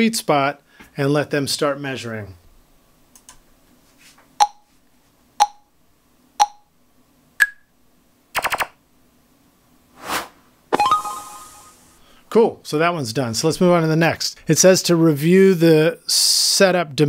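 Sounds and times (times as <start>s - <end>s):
short countdown beeps: 4.4s - 4.7s, 5.4s - 5.7s, 6.4s - 6.7s
rapid clicks: 8.4s - 8.7s
two-tone chime: 10.8s - 11.9s.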